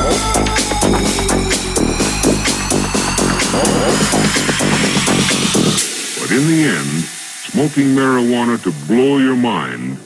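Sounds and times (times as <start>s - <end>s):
steady hiss: 0.3s - 10.0s
spoken voice sample: 3.2s - 5.3s, 6.0s - 10.0s.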